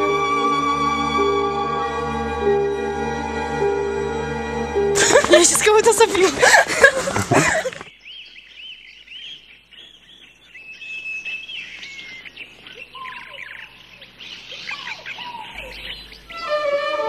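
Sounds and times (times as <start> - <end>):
small birds chirping: 5.0 - 17.0
low bird calls: 6.4 - 17.0
bird whistle: 14.4 - 17.0.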